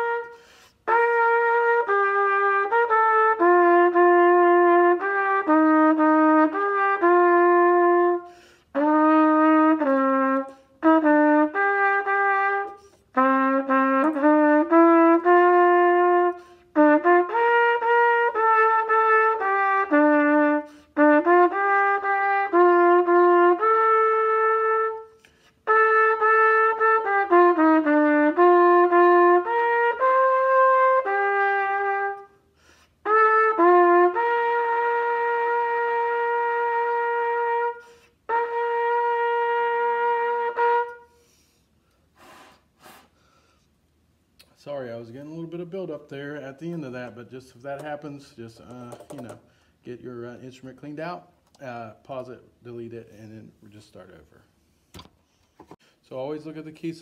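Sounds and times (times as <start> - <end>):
solo trumpet melody: 0.0 - 41.5.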